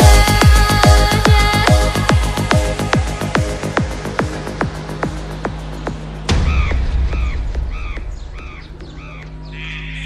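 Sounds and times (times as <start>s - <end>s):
electronic trance music: 0.0s - 10.0s
deep boom: 6.3s - 9.6s
caw-like calls: 6.4s - 10.0s.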